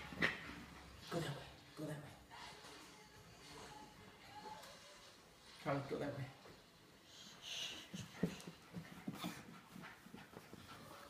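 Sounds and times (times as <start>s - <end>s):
dog panting: 7.0s - 11.0s.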